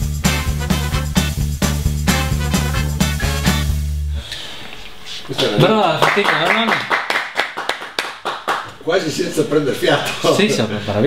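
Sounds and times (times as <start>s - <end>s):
light hand claps: 6.0s - 8.8s.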